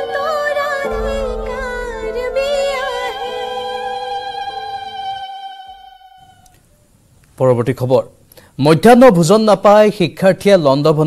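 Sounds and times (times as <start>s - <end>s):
held music chord: 0.8s - 5.3s.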